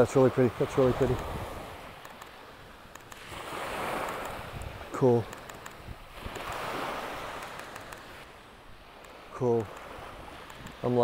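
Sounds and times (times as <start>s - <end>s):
small waves washing on sand: 0.0s - 11.0s.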